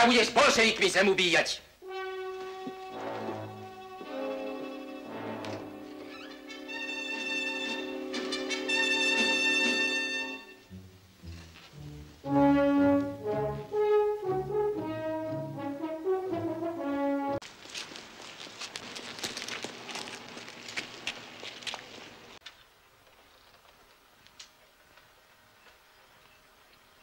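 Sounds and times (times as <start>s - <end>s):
orchestral music with brass melody: 1.8s - 17.4s
dry crackling with clicks: 17.8s - 26.8s.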